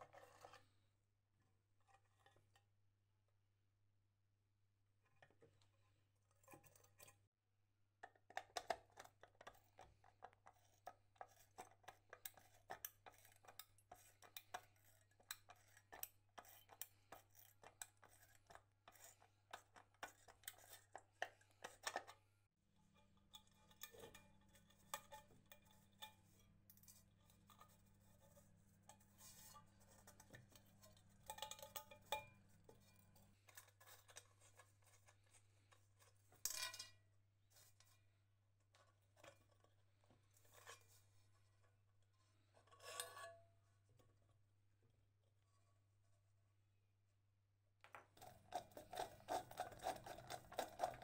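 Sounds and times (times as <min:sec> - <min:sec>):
light metal scraping: 0:00.0 - 0:00.8, 0:09.4 - 0:22.2, 0:22.8 - 0:38.0, 0:38.8 - 0:41.6, 0:42.4 - 0:43.4.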